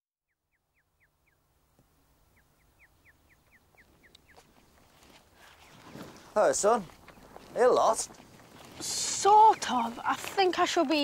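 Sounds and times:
quiet outdoor background: 0.2 - 11.0.

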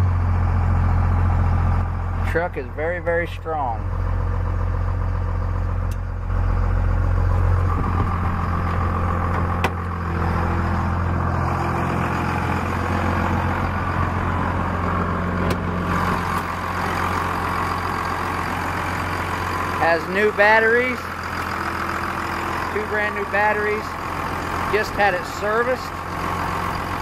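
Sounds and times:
diesel engine idling: 0.0 - 27.0.

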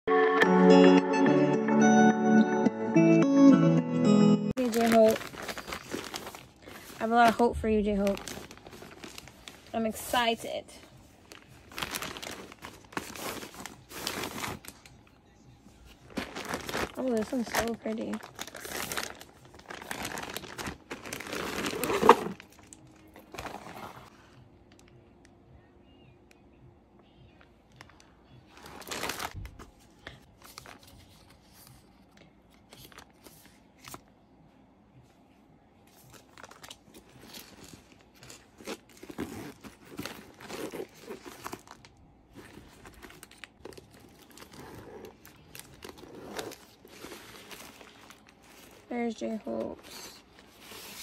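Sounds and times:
plastic bag crinkling: 4.6 - 15.0, 16.0 - 24.1, 27.7 - 29.6, 35.9 - 51.0.

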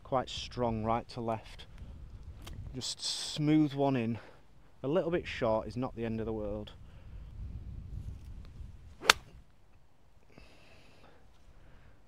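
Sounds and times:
golf club striking ball: 9.0 - 9.4.

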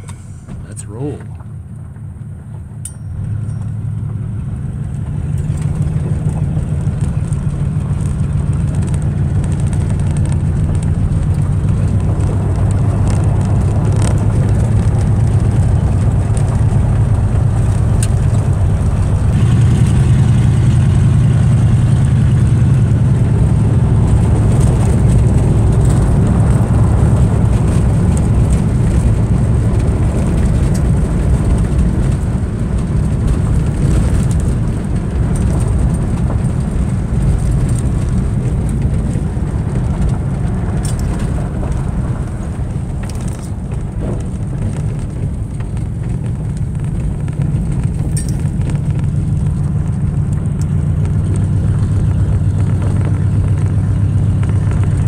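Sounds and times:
car engine running: 0.0 - 55.0
engine ticks: 0.0 - 55.0
tyres on gravel: 0.0 - 55.0.

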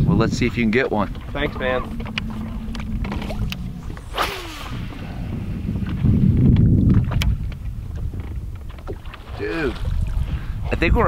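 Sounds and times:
steady low hum: 0.0 - 6.6
wind rumbling on microphone: 0.0 - 11.0
short falling swish: 1.5 - 5.8.

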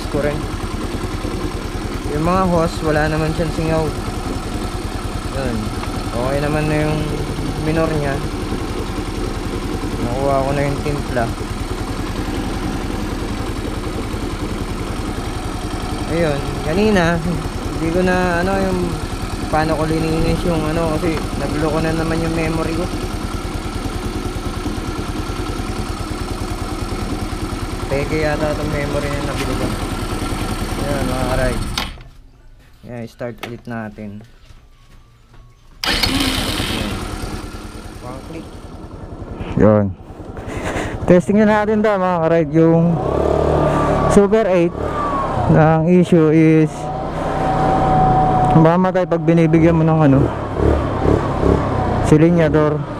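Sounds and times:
scooter engine idling: 0.0 - 32.3, 35.8 - 46.8.

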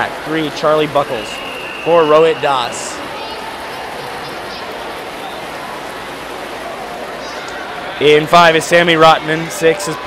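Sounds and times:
swimmers splashing: 0.0 - 10.0.

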